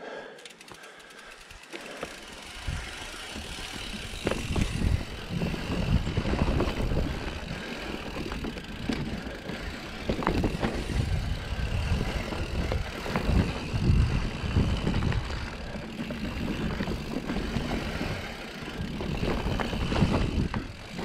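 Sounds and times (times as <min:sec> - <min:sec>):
bike knocking and rattling: 0:00.4 - 0:21.0
bike tyres rumbling on dirt: 0:00.8 - 0:21.0.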